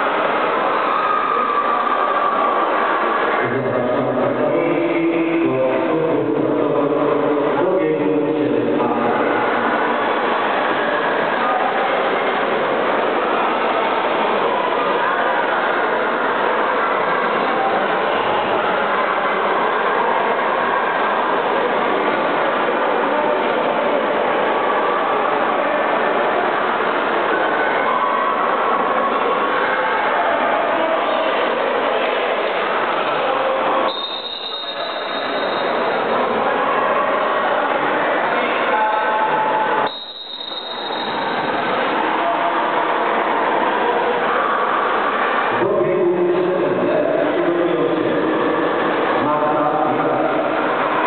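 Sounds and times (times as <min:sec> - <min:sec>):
echoing voices: 0:00.0 - 0:51.0.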